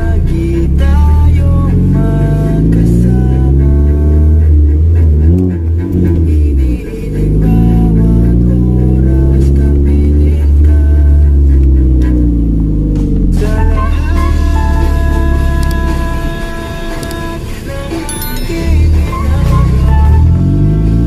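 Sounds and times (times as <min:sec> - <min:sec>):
car engine accelerating: 0:00.0 - 0:21.0
guitar-backed song: 0:00.0 - 0:21.0.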